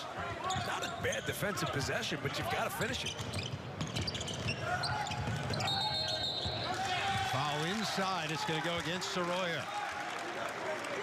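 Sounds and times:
arena crowd noise: 0.0 - 3.9, 4.5 - 11.0
referee's whistle: 4.6 - 7.0.

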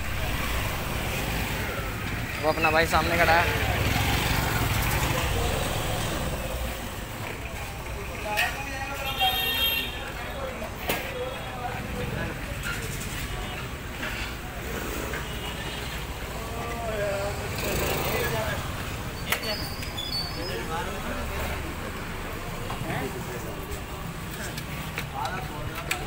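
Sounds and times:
motorcycle and vehicle engines rumbling: 0.0 - 26.0
voices: 0.0 - 26.0.

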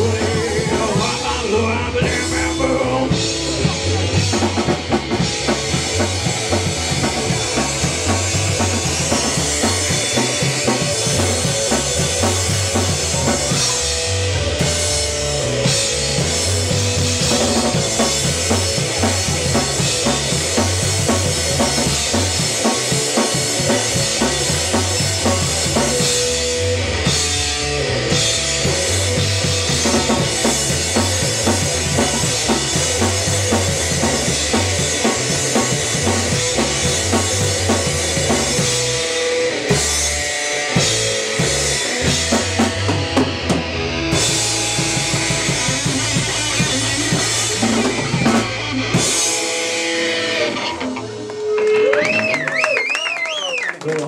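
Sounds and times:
electric guitar: 0.0 - 53.7.

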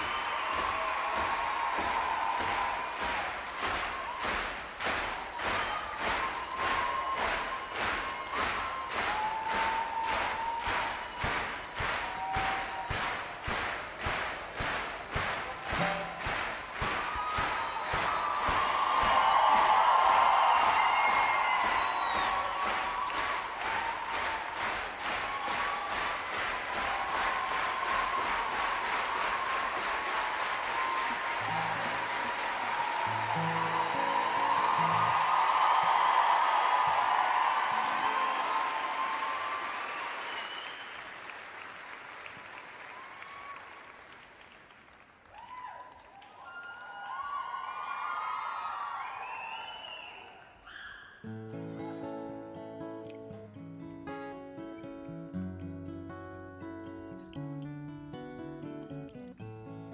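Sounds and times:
whistles and cheers: 0.0 - 13.3, 16.8 - 41.4, 42.6 - 44.1, 45.2 - 51.3
audience clapping in rhythm: 0.0 - 47.7
band music: 15.7 - 16.5.

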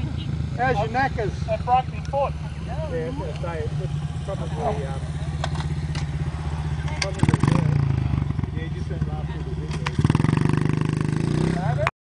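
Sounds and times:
dirt bike engine idling and revving: 0.0 - 11.9.

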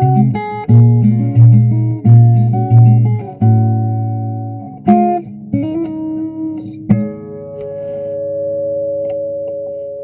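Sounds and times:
acoustic guitar notes ringing: 0.0 - 10.0.

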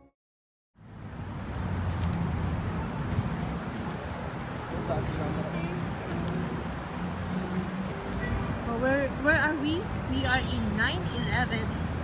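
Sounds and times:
low traffic rumble: 0.8 - 12.0.

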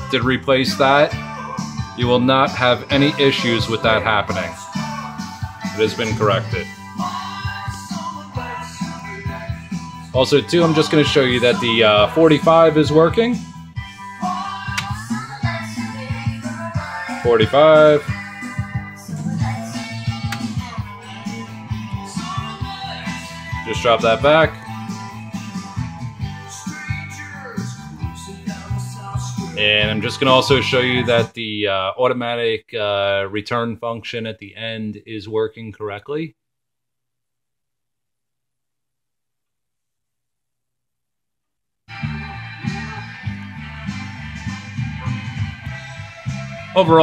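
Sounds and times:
music with a steady beat: 0.0 - 31.3, 41.9 - 47.0.

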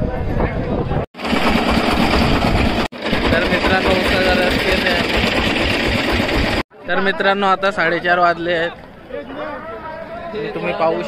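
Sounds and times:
engine running: 1.2 - 6.6
crowd chatter: 6.7 - 11.0.

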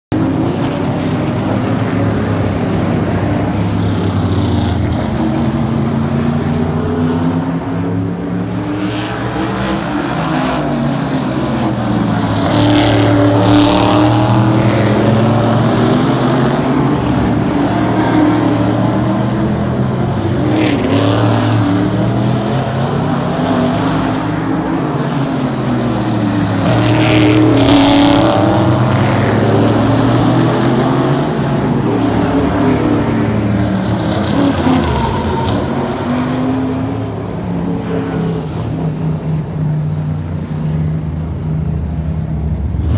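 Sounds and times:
race car engines passing: 0.1 - 42.9.

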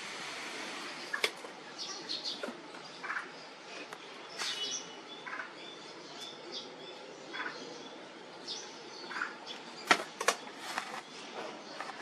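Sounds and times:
steady background hiss: 0.0 - 12.0
small birds chirping: 0.6 - 12.0.

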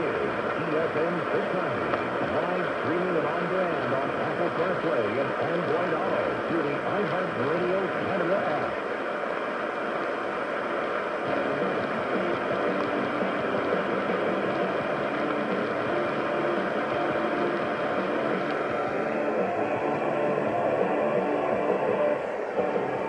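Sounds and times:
faint radio program audio: 0.0 - 23.0
radio static and hiss: 0.0 - 23.0.

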